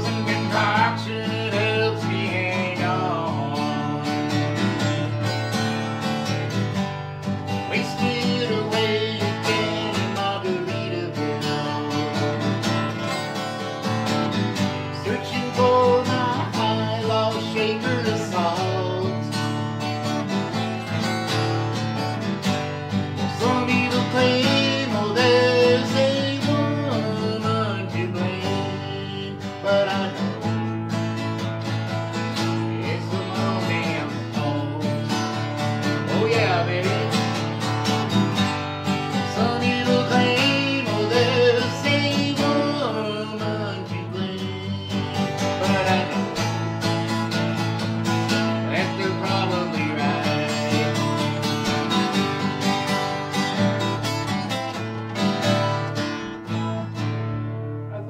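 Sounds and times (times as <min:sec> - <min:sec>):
man singing: 0:00.0 - 0:05.7, 0:07.4 - 0:13.6, 0:14.6 - 0:19.8, 0:23.1 - 0:52.4
acoustic guitar strumming: 0:00.0 - 0:58.0.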